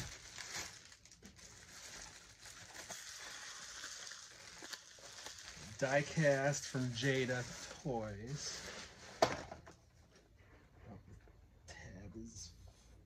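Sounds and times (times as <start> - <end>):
bubble wrap crinkling: 0.0 - 9.3.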